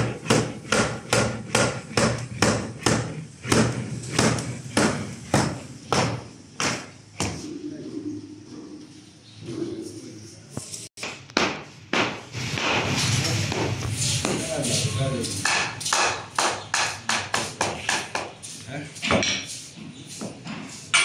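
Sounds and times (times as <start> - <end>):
sharp knocks on wood: 0.0 - 7.4.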